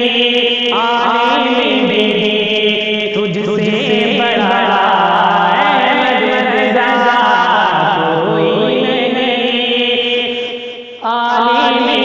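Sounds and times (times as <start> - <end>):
man singing devotional song: 0.0 - 12.0
steady held drone: 0.0 - 12.0.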